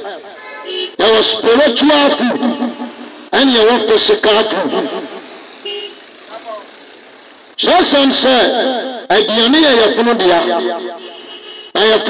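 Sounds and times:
roadside traffic noise: 0.0s - 12.0s
vehicle horn toot: 0.3s - 1.1s, 5.6s - 6.0s, 11.0s - 11.8s.

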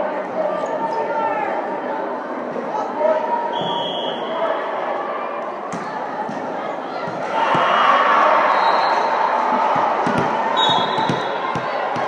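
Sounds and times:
crowd voices and chatter: 0.0s - 12.0s
short high whistle: 3.5s - 4.4s.

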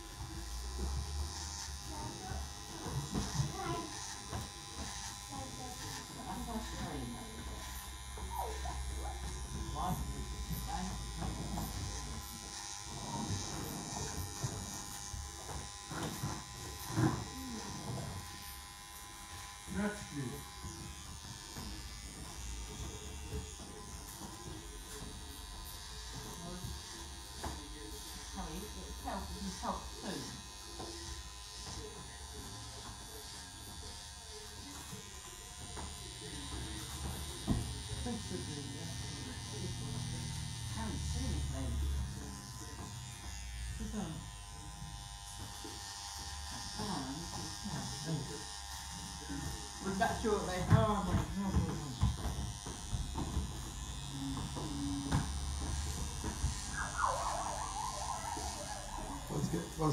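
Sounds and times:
electric beard clipper buzzing: 0.0s - 59.9s.

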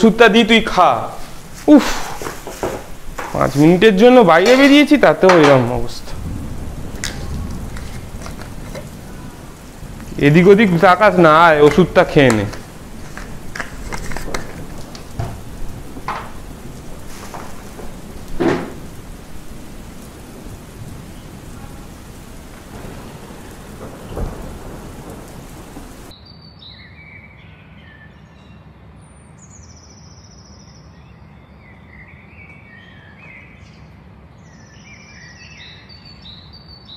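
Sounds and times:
steady rain: 0.0s - 26.1s
thunder rumble: 0.0s - 26.1s
birds chirping and whistling: 22.9s - 36.9s.

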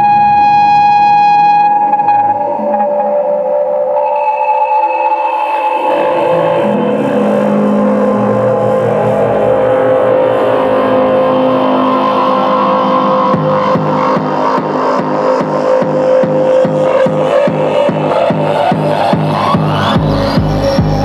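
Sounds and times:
distorted synth drone: 0.0s - 21.0s.

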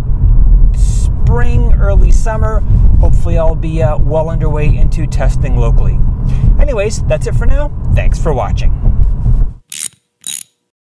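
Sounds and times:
sharp mechanical clicks: 9.7s - 10.6s.

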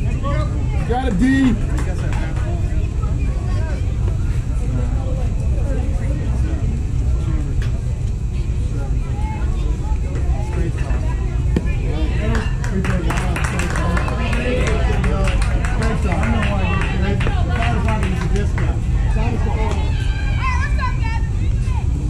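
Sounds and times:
faint indistinct voices: 0.0s - 22.0s.

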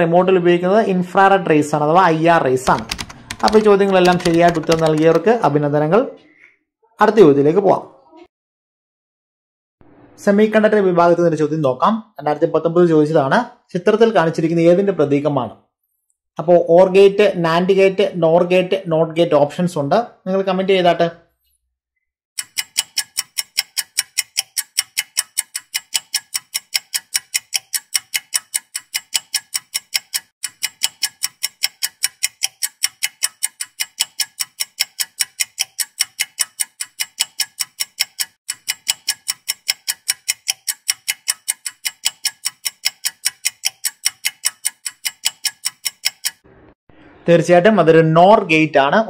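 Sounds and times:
clock ticking: 2.6s - 5.4s, 22.4s - 46.4s.

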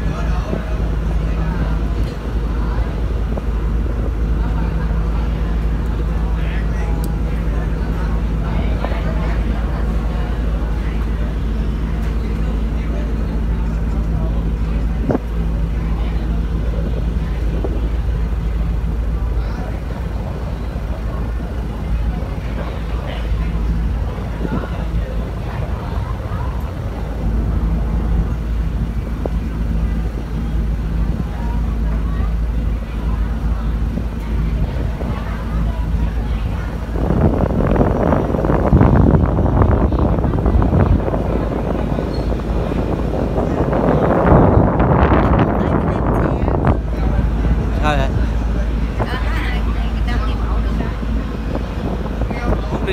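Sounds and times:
passengers talking faintly: 0.0s - 52.9s
ship engine low drone: 0.0s - 52.9s
wind on microphone: 0.0s - 52.9s.

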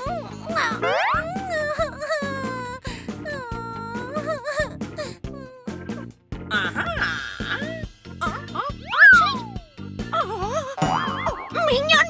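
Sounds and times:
cartoon background music: 0.0s - 12.0s
springy boing: 10.8s - 11.6s.

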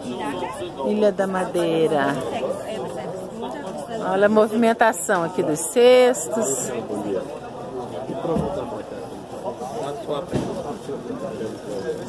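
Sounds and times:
people talking outdoors: 0.0s - 12.0s.

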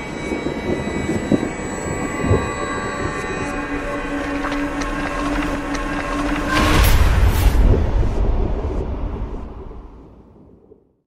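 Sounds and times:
droning tone: 0.0s - 10.5s
deep rumble: 0.0s - 10.9s
whoosh: 6.5s - 10.6s.

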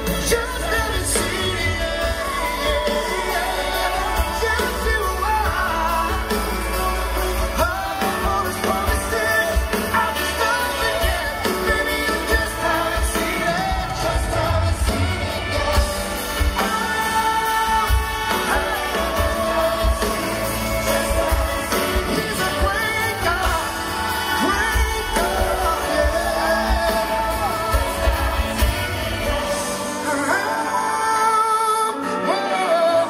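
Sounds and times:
live pop band with singer: 0.0s - 33.0s.

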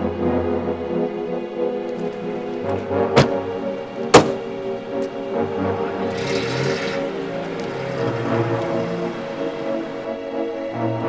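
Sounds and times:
background music with held tones: 0.0s - 11.0s
car door slamming: 1.9s - 5.2s.

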